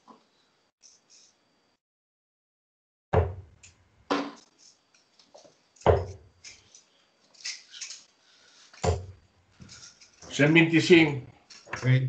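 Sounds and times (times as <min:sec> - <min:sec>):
darts thudding into dartboard: 0:03.2 - 0:03.5, 0:04.1 - 0:04.5, 0:05.8 - 0:06.3, 0:08.8 - 0:09.2.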